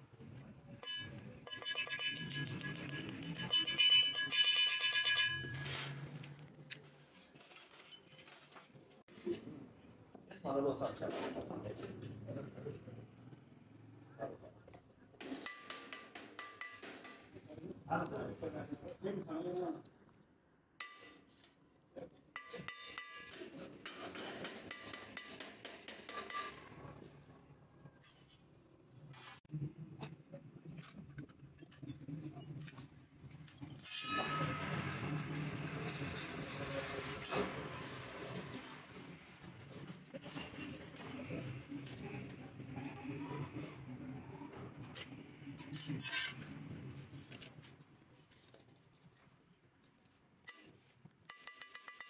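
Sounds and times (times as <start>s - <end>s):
hammer tapping sheet steel: 0.8s - 6.0s, 15.2s - 17.4s, 22.4s - 26.6s, 51.3s - 52.0s.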